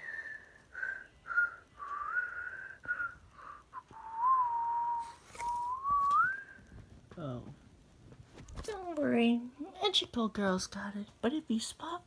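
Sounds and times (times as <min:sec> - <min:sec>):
person whistling: 0:00.0 - 0:06.6.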